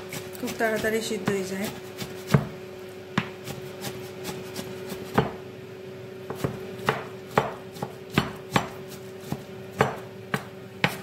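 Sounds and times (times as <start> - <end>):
knife chopping on wooden board: 0.1 - 5.4, 6.2 - 11.0.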